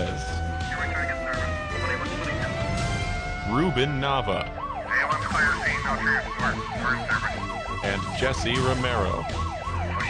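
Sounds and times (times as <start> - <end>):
emergency siren in yelp mode: 0.0 - 10.0.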